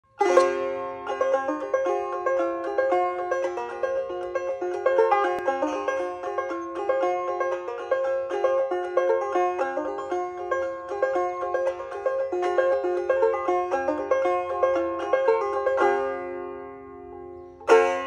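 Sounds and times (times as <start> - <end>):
banjo picking: 0.0 - 18.0.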